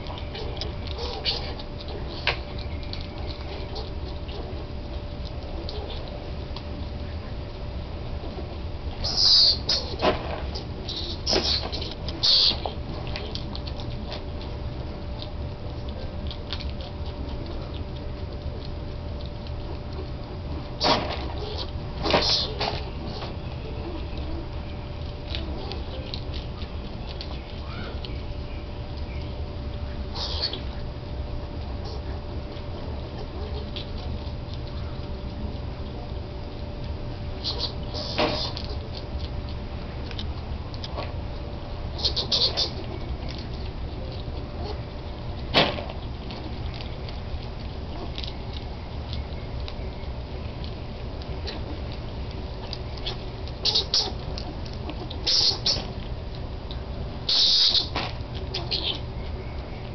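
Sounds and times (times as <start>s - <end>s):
animals eating clicks and crunches: 0.0s - 59.9s
steady low rumble: 0.0s - 59.9s.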